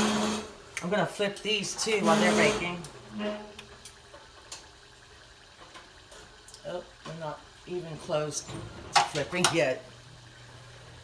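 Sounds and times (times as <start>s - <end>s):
oil bubbling and sizzling: 0.0s - 11.0s
small pops of frying oil: 5.5s - 7.3s.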